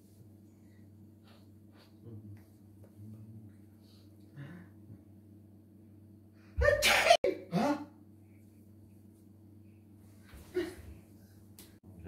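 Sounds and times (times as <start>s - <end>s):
man sneezing: 6.8s - 8.0s.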